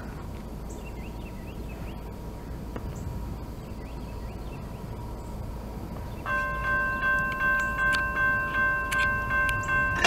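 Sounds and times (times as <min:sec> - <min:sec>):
railroad crossing bell ringing: 0:06.2 - 0:10.0.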